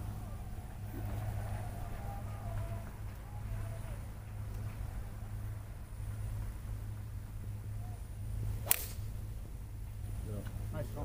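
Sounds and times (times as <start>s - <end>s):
low background hum: 0.0s - 11.0s
golf club striking ball: 8.6s - 9.1s.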